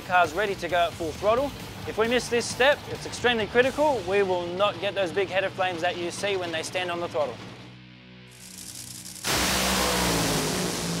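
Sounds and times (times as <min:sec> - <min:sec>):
dragster engine on heavy throttle: 0:08.3 - 0:11.0.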